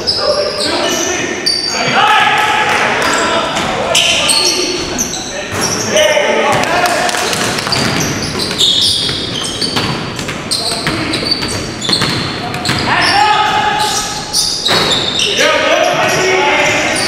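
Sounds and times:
sneakers squeaking on court: 0.0s - 2.0s, 3.0s - 6.0s, 7.2s - 17.0s
players calling out: 0.0s - 17.0s
basketball bouncing: 6.5s - 12.9s.

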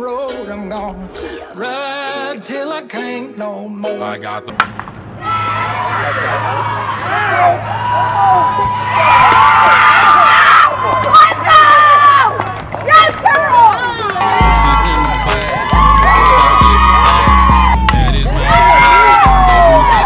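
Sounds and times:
young women laughing and cheering: 5.2s - 20.0s
song with heavy bass and beat: 14.2s - 20.0s.

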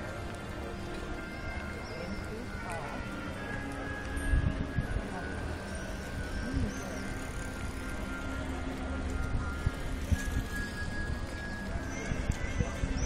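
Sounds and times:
distant voices: 0.0s - 13.0s
faint music with sustained tones: 0.0s - 13.0s.

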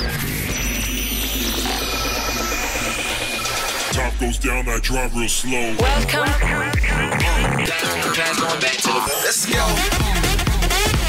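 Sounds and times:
rising synth sweep: 0.0s - 4.0s
deep bass: 0.0s - 7.8s, 9.6s - 11.0s.

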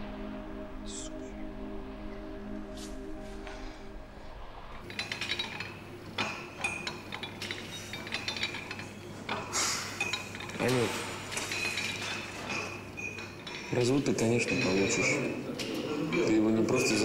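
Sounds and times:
steady low hum: 0.0s - 14.4s
weight machines clinking and clanking: 4.8s - 17.0s.

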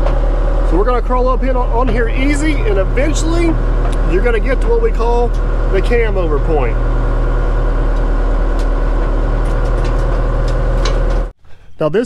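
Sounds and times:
excavator diesel engine running: 0.0s - 11.4s.

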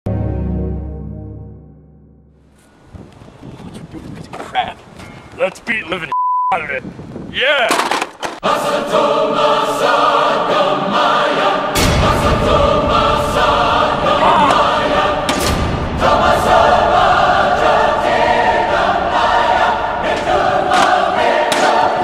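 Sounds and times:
choir singing sustained chords: 0.1s - 2.3s, 8.4s - 22.0s.

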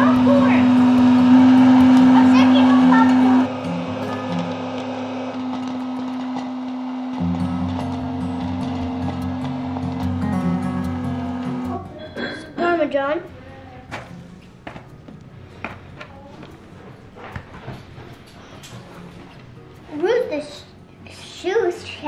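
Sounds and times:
voices: 0.0s - 4.5s
background music with held note: 0.0s - 21.4s.

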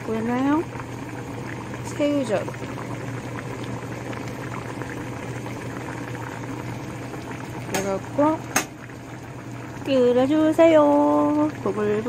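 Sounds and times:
low steady hum: 0.0s - 12.0s
stew boiling in a pot: 0.0s - 12.0s.

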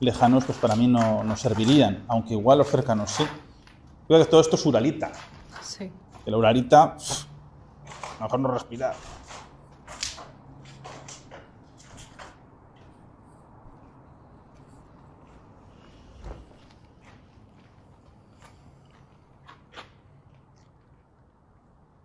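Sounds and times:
footsteps on gritty floor: 4.7s - 6.5s, 7.8s - 20.8s.

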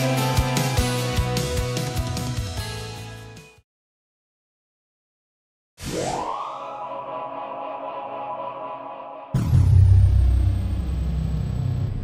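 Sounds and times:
deep cinematic boom: 9.4s - 12.0s.

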